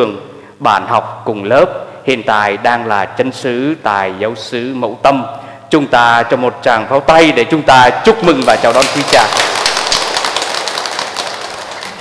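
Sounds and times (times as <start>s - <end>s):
congregation applauding: 8.3s - 12.0s.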